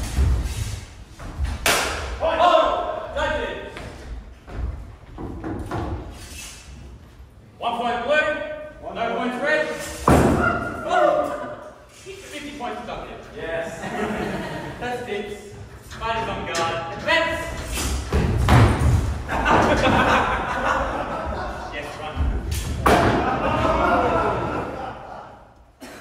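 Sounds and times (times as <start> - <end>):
voices in a large hall: 1.8 - 26.0.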